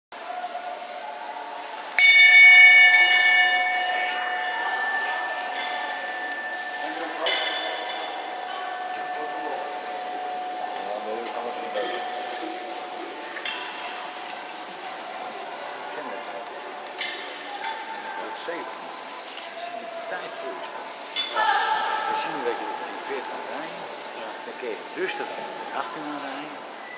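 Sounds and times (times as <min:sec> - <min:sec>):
bell ringing: 0:02.0 - 0:14.2.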